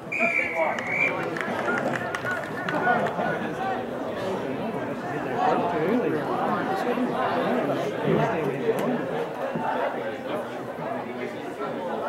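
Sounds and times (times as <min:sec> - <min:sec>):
people calling out and talking: 0:00.0 - 0:12.0.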